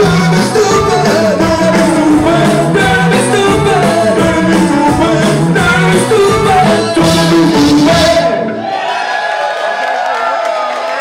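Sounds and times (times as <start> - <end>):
live band playing: 0.0 - 8.6
audience cheering and whooping: 8.4 - 11.0.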